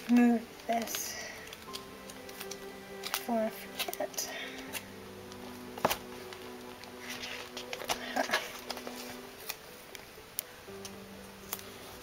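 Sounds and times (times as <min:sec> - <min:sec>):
paper rustle: 0:00.0 - 0:10.1
soft music of held notes: 0:00.0 - 0:12.0.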